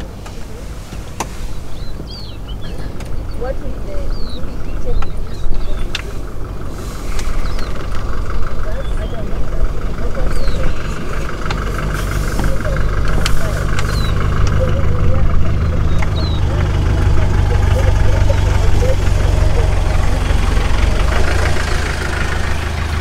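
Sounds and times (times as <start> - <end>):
vehicle engine idling: 0.0 - 23.0
high bird chirps: 1.4 - 6.4, 7.1 - 9.4, 10.2 - 21.4.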